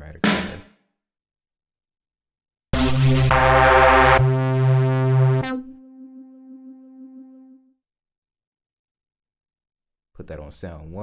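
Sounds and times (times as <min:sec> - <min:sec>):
sustained synth chord: 0:02.8 - 0:07.7.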